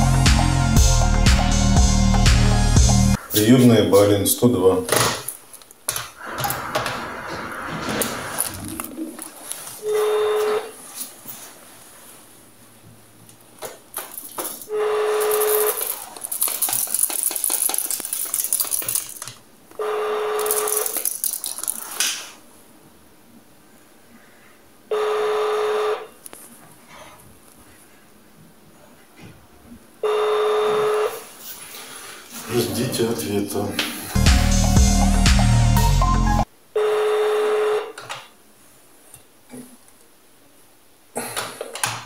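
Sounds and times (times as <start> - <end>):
telephone ringback tone: 9.8 - 10.8
handset rustling: 13.8 - 19.4, 20.4 - 22.4.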